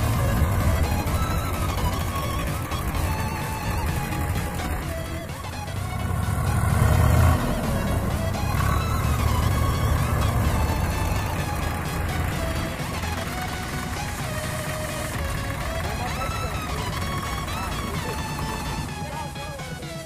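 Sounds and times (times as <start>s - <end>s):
background music: 0.0s - 20.0s
tractor diesel engine under load: 0.0s - 20.0s.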